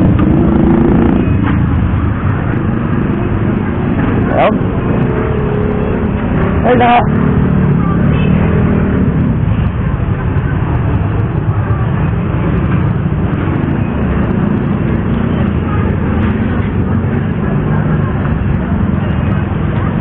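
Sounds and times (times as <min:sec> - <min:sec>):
street traffic noise: 0:00.0 - 0:20.0
vehicle engines running: 0:00.0 - 0:20.0.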